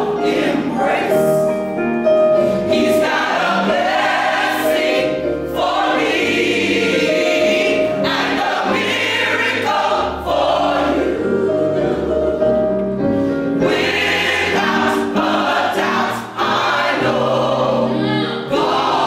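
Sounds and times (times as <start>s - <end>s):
gospel choir singing: 0.0s - 19.0s
keyboard accompaniment: 0.0s - 19.0s.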